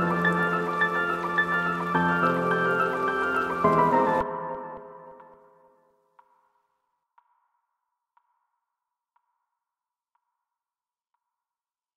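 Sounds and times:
music: 0.0s - 11.9s.

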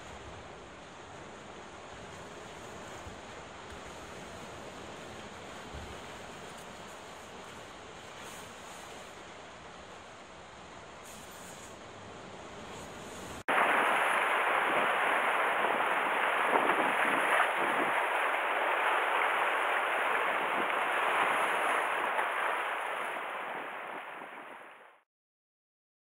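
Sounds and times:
sea surf rushing: 12.4s - 25.0s.

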